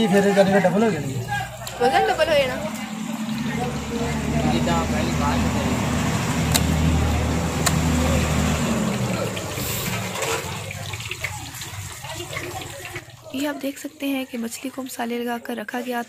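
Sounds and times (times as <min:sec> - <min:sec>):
vehicle engine droning: 0:00.0 - 0:12.0
street noise hiss: 0:00.6 - 0:10.8
sharp clicks: 0:06.4 - 0:06.8.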